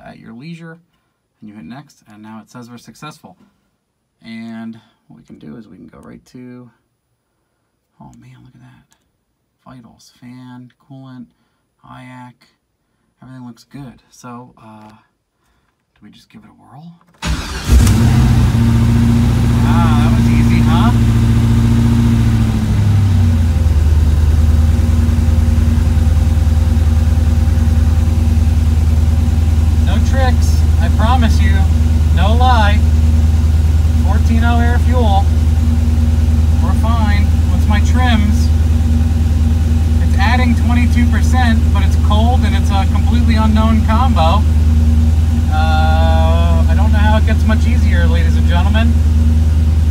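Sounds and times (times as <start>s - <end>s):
car engine idling: 17.2s - 49.9s.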